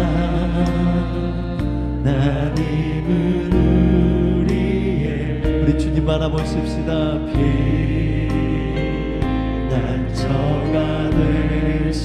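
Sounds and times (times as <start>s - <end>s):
sustained keyboard chords: 0.0s - 12.0s
worship band playing: 0.0s - 12.0s.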